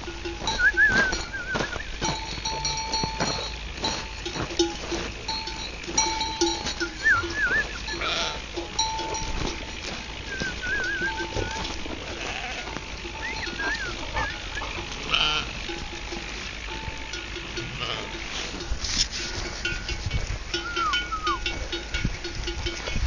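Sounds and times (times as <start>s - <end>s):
sheep bells clanking: 0.0s - 23.0s
sheep bleating: 6.7s - 8.6s, 9.4s - 15.7s, 17.6s - 18.5s.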